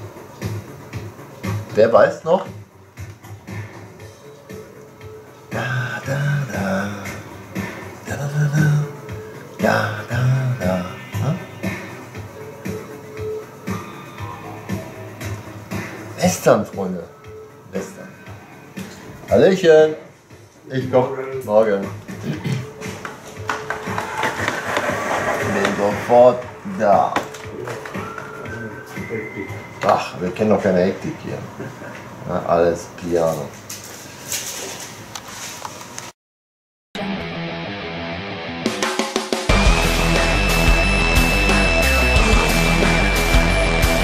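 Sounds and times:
film trailer music: 0:03.0 - 0:16.2, 0:37.0 - 0:44.0.

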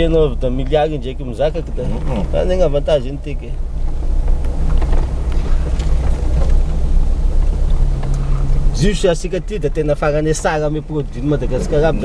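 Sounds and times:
road noise: 0:00.0 - 0:12.0
vehicle engine rumble: 0:00.0 - 0:12.0.

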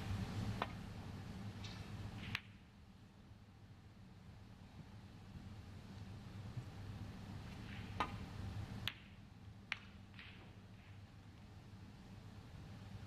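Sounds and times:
low steady hum: 0:00.0 - 0:13.0
snooker balls colliding click: 0:01.6 - 0:02.6, 0:07.5 - 0:11.0
cue striking ball click: 0:08.8 - 0:10.6.

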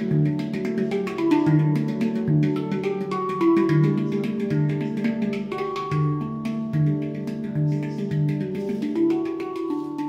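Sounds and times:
handpan notes ringing: 0:00.0 - 0:10.0.

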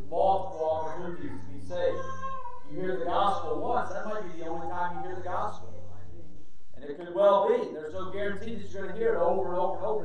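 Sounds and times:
man preaching: 0:00.0 - 0:10.0
steady low hum: 0:00.0 - 0:10.0.

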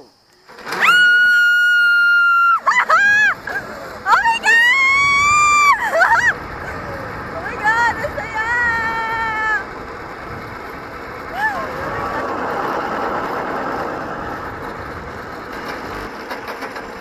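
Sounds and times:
woman screaming with excitement: 0:00.7 - 0:07.0, 0:07.6 - 0:09.7, 0:11.3 - 0:12.2
woman yelping: 0:00.8 - 0:09.7, 0:11.3 - 0:12.3.

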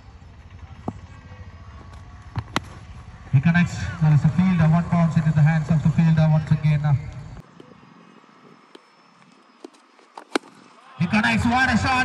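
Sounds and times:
cricket bat striking ball: 0:01.9 - 0:03.0, 0:10.2 - 0:10.7.

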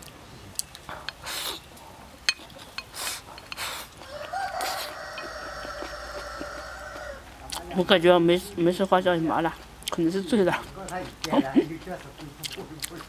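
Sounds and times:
person eating breathily: 0:00.5 - 0:02.2, 0:02.8 - 0:07.2
rooster crowing: 0:04.0 - 0:07.4.

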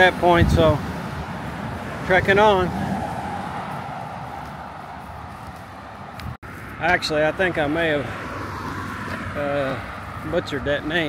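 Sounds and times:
vehicle passing: 0:00.0 - 0:11.0.

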